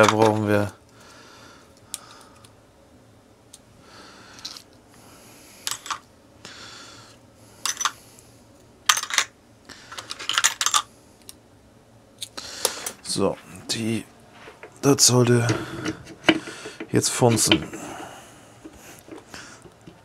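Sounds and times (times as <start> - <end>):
metal washers clinking: 8.9 - 9.3, 14.5 - 18.0.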